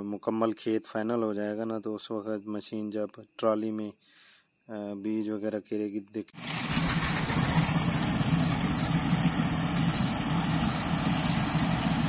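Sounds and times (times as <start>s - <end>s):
combine harvester engine drone: 6.4s - 12.0s.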